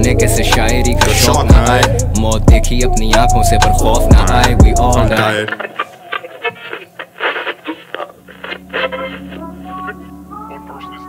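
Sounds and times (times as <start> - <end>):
hip-hop track: 0.0 - 11.0
radio-filtered voice chatter: 5.2 - 11.0.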